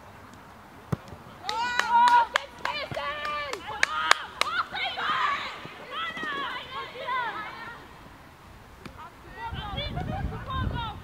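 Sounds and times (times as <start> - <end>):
women shouting calls: 1.4 - 7.9.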